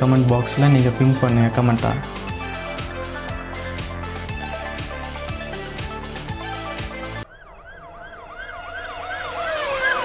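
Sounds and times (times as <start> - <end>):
siren yelping: 6.4 - 10.0.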